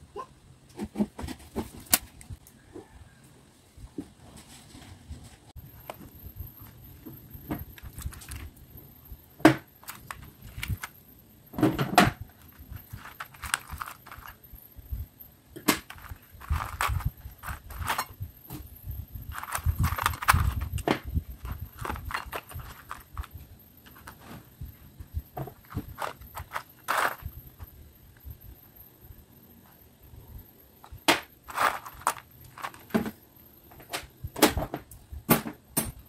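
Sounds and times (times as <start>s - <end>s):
metal parts rattling in plastic tub: 9.8s - 10.9s, 11.7s - 14.4s, 15.8s - 18.2s, 19.3s - 24.2s, 25.5s - 27.3s, 31.5s - 33.2s.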